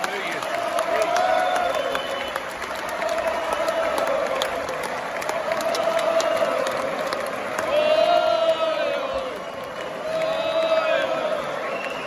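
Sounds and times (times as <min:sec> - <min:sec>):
audience applauding: 0:00.0 - 0:12.0.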